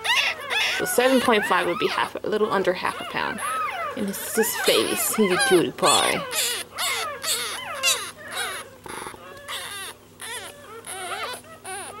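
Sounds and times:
puppy squealing and whimpering: 0.0 - 12.0.

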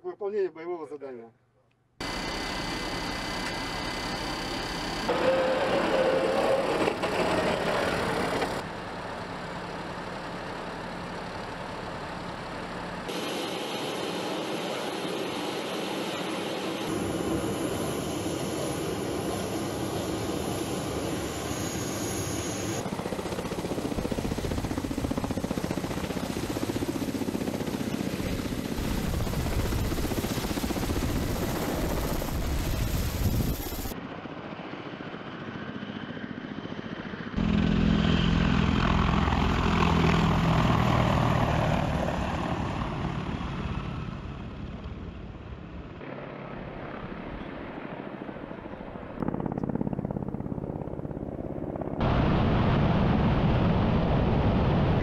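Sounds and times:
helicopter rotors and turbine engines: 2.0 - 55.0.

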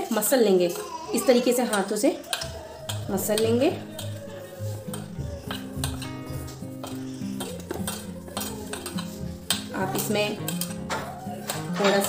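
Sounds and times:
hand mixing in steel bowl: 1.6 - 12.0
background music: 2.4 - 12.0
scrapes and clinks against bowl: 2.9 - 12.0.

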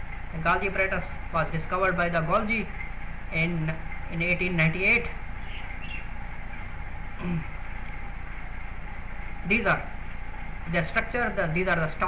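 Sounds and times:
electrical hum and hiss: 0.0 - 12.0
man humming: 7.2 - 7.6.

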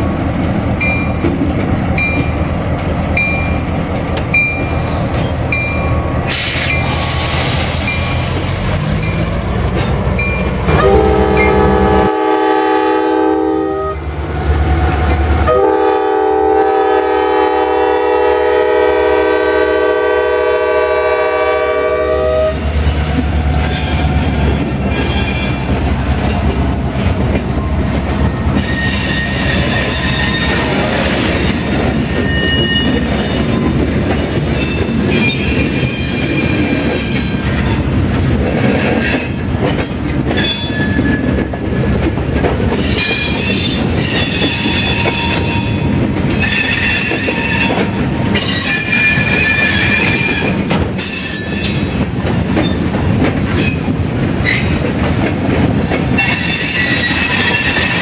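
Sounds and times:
steel wheels squealing on rail: 4.3 - 9.3, 23.6 - 26.6, 28.5 - 41.9, 42.7 - 52.9, 53.5 - 54.8, 55.8 - 58.0.

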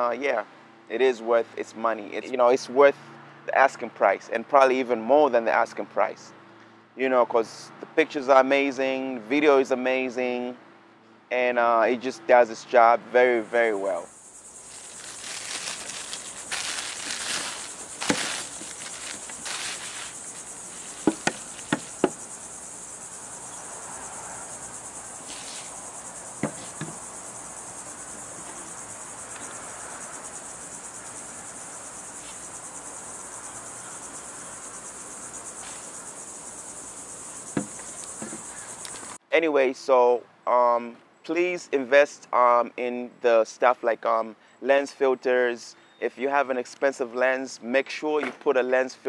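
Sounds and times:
high insect chirr: 13.2 - 39.2
bubble wrap crinkling: 14.6 - 22.2
knocks on wooden table: 21.0 - 22.2, 37.6 - 38.4.

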